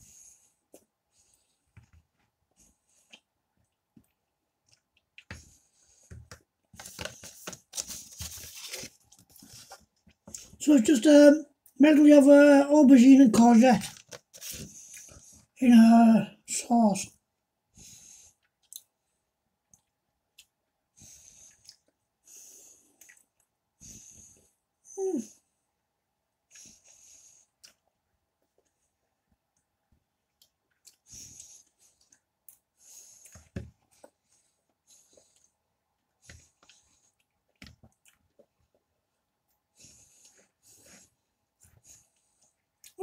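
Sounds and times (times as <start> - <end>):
chewing food: 2.8 - 6.4, 22.8 - 23.6, 26.5 - 41.0.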